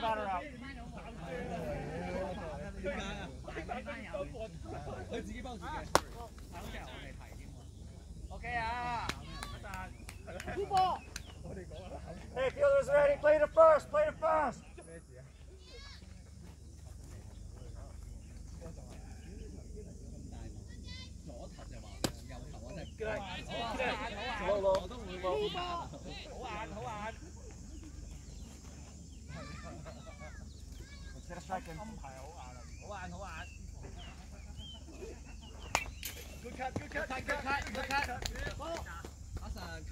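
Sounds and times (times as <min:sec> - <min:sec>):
people talking and calling out: 0:00.0 - 0:39.9.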